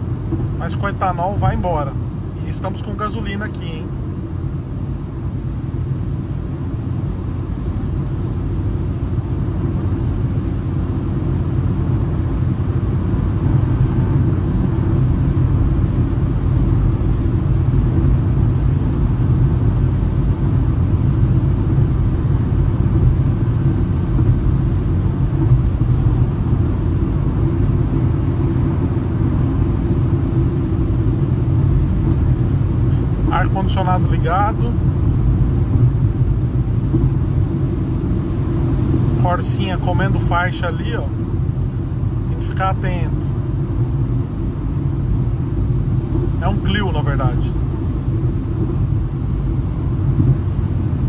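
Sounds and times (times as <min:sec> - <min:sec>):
car cabin rumble at speed: 0:00.0 - 0:51.0.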